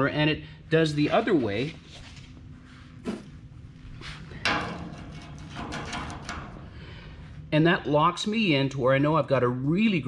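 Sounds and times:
metal square tapping steel: 0:04.4 - 0:06.6.

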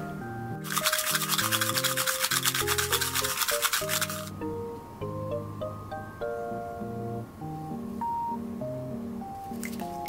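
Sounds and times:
soft background music: 0:00.0 - 0:10.0
glitter charms rattling: 0:00.6 - 0:04.3.

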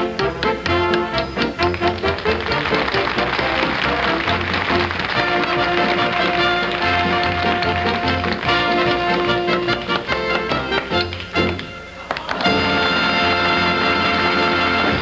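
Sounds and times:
band music: 0:00.0 - 0:15.0.

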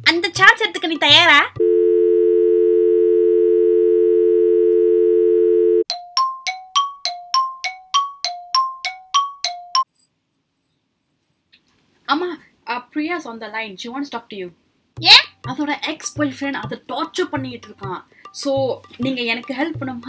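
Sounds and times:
telephone dial tone: 0:01.6 - 0:05.9.

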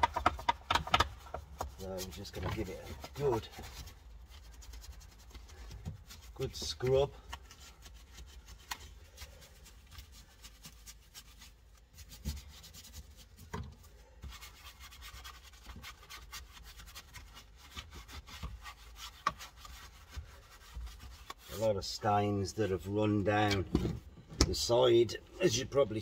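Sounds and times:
brush scrubbing plastic trim: 0:00.0 - 0:23.6.

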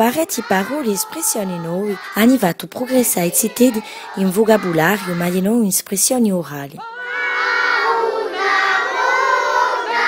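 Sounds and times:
children singing in unison: 0:00.0 - 0:05.6, 0:06.8 - 0:10.0.

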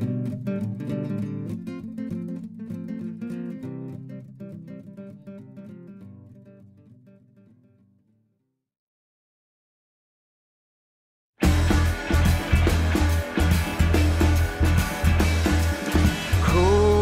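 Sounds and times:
strummed acoustic guitar: 0:00.0 - 0:08.2, 0:11.4 - 0:17.0.

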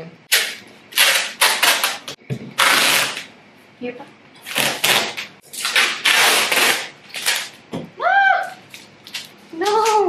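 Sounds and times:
packing tape ripping off roll: 0:00.3 - 0:03.3, 0:04.4 - 0:07.6
person exclaiming: 0:08.0 - 0:08.6.

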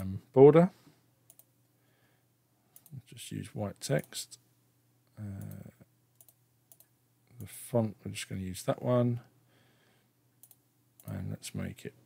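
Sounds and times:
computer mouse clicks: 0:01.3 - 0:01.5, 0:02.7 - 0:03.0, 0:05.3 - 0:07.5, 0:10.4 - 0:11.2.

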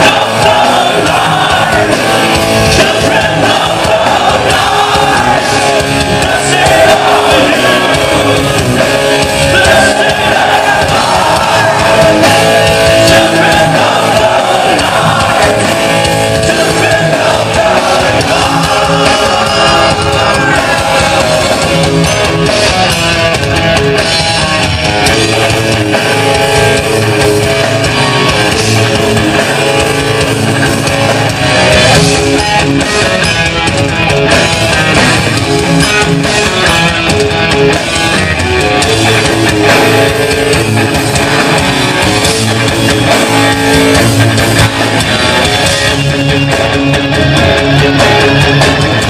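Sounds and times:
bass guitar: 0:00.0 - 0:49.0
distorted rhythm guitar: 0:00.0 - 0:49.0
drum kit: 0:00.0 - 0:49.0
electric guitar lead: 0:00.0 - 0:49.0.

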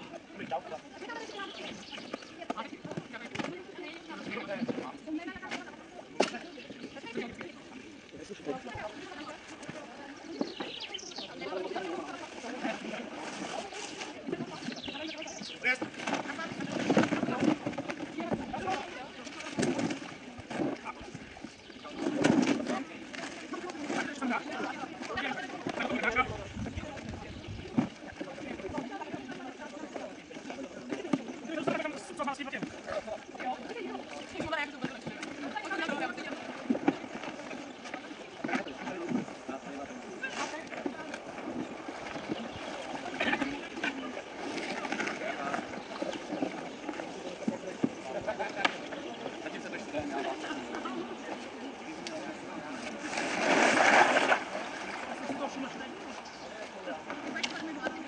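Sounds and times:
background chatter: 0:00.0 - 0:58.0.

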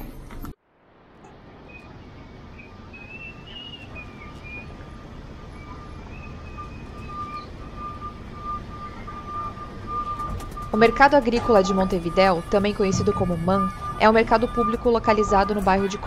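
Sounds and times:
steady traffic hum: 0:00.0 - 0:16.0
wavering higher tones: 0:10.8 - 0:16.0.

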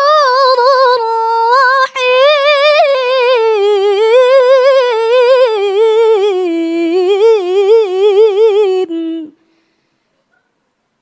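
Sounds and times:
woman reciting melodically: 0:00.0 - 0:09.4.

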